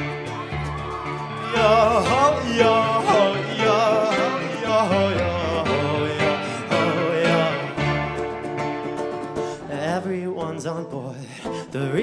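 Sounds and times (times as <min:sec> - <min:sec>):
drums: 0:00.0 - 0:09.6
strummed acoustic guitar: 0:00.0 - 0:12.0
person singing with vibrato: 0:01.2 - 0:08.3.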